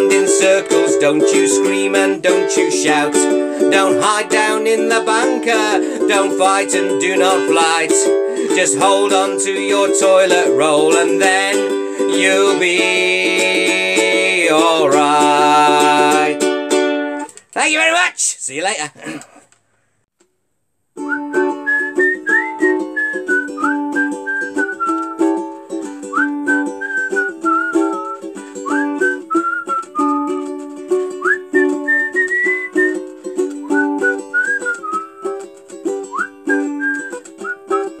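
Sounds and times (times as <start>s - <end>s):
strummed string instrument: 0.0s - 17.5s, 21.0s - 38.0s
whistled tune: 21.0s - 38.0s.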